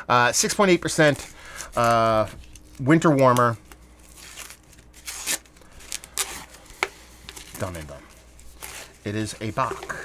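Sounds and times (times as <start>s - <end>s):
paper towel rustling and tearing: 0.4s - 9.8s.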